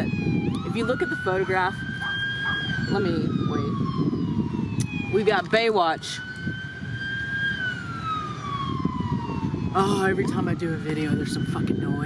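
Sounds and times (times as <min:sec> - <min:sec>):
siren wailing: 0:00.0 - 0:12.0.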